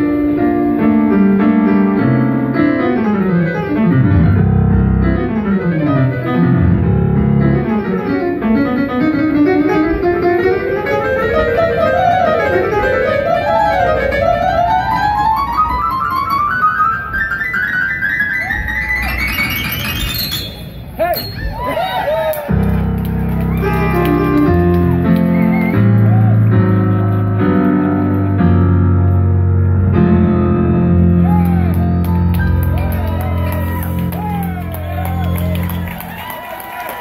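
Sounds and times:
piano solo: 0:00.0 - 0:21.7, 0:22.4 - 0:37.0.

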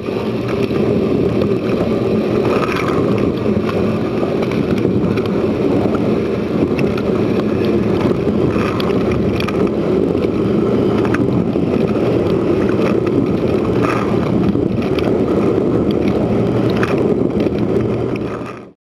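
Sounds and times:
pump hum: 0:00.0 - 0:18.7.

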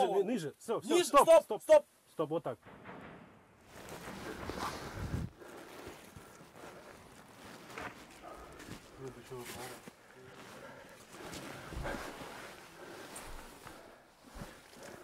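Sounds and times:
clothing and gear rustling: 0:03.7 - 0:15.0
footsteps on dirt: 0:03.7 - 0:15.0.

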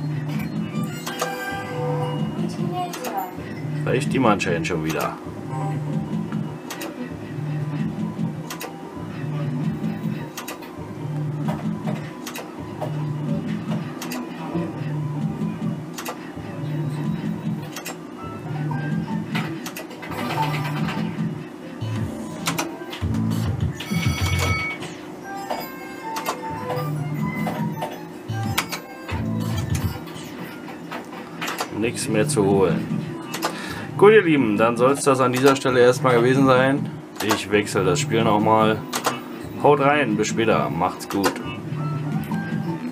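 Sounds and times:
slot machine reel clicks: 0:00.8 - 0:01.8, 0:19.5 - 0:21.1, 0:23.8 - 0:30.6.

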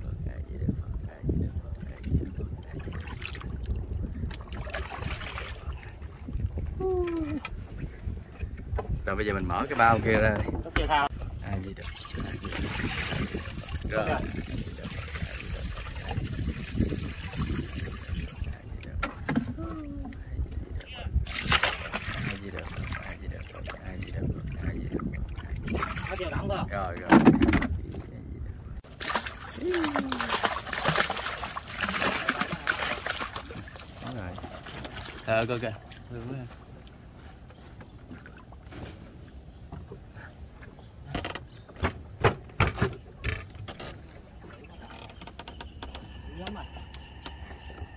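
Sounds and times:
water splashing and sloshing: 0:00.0 - 0:28.2, 0:28.8 - 0:47.9
fish thrashing at the surface: 0:21.3 - 0:24.0, 0:28.9 - 0:35.3.

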